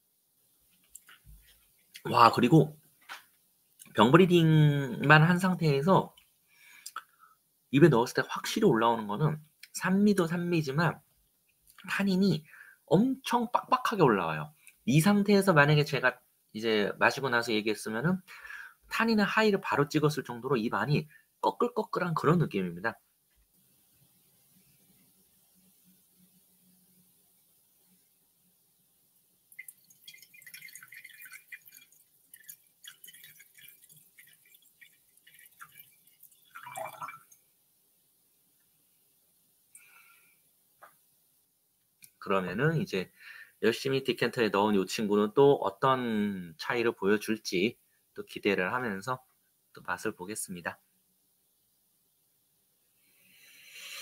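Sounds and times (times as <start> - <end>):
wine pouring into a glass: 29.5 - 37.4
person sniffing inhale: 43.2 - 43.6, 53.0 - 54.0.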